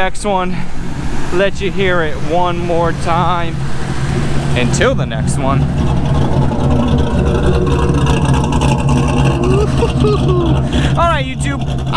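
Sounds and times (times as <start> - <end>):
car engine idling: 0.1 - 11.9.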